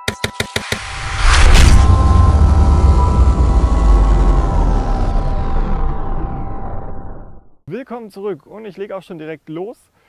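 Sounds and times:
deep rumbling boom: 0.8s - 7.6s.

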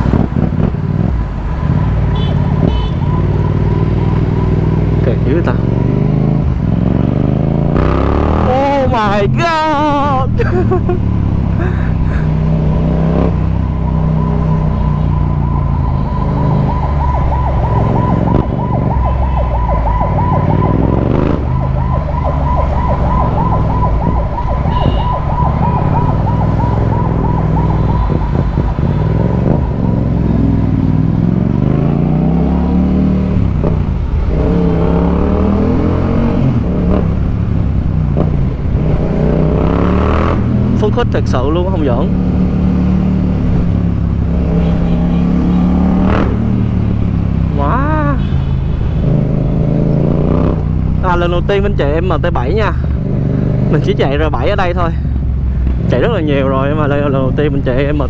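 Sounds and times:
motorcycle engine revving: 2.5s - 10.3s, 11.0s - 48.2s, 49.0s - 51.2s
high warbling tone: 12.7s - 30.5s.

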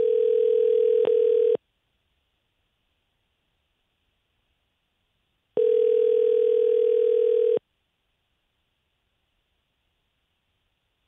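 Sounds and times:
telephone ringback tone: 0.0s - 1.6s, 5.6s - 7.6s.

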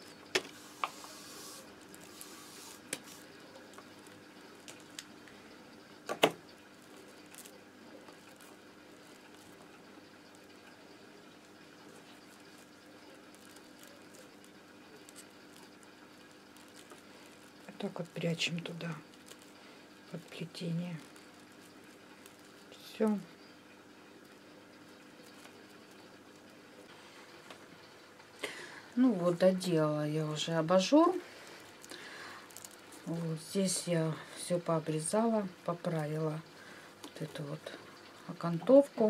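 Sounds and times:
handling stiff paper: 0.5s - 5.1s.

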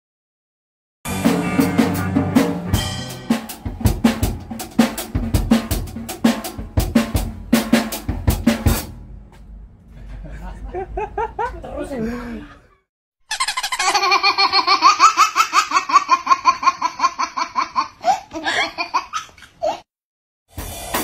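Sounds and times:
drum kit snare and bass hits: 1.1s - 9.2s, 20.5s - 21.0s.

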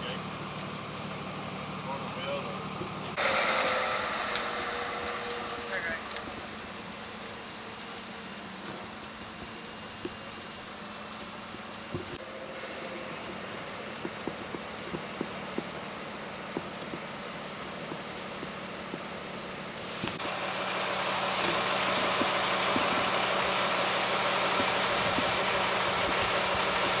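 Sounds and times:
vehicle engine idling: 0.0s - 27.0s
rushing noise: 3.1s - 9.0s.

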